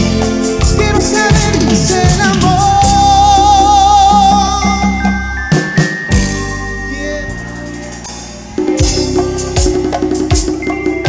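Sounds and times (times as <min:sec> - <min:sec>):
bass line: 0:00.0 - 0:11.0
live cumbia band playing: 0:00.0 - 0:11.0.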